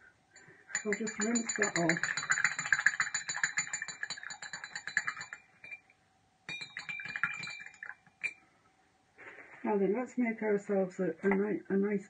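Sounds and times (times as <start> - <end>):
paintbrush handle rattling in water pot: 0.7 - 5.8, 6.5 - 8.4.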